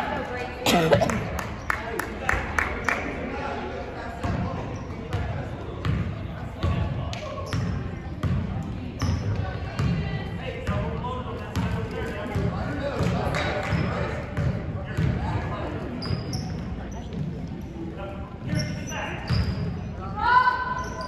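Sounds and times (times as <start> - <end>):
spectators chatting: 0.0 - 21.0.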